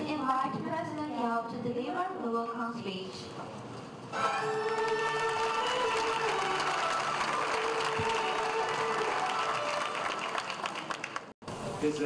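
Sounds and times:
music with long held notes: 4.2 - 10.5
audience applauding: 4.2 - 11.4.

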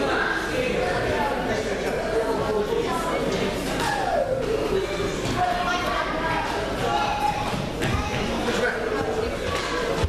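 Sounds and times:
voices echoing in hall: 0.0 - 10.0.

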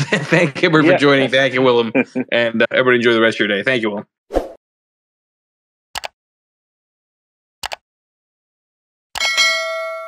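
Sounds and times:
notification bell ding: 9.2 - 10.0.

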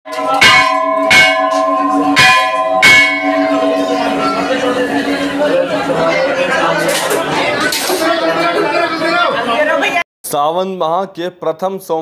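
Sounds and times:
steady low ringing tone: 0.1 - 6.6
temple bell strokes: 0.1 - 6.7.

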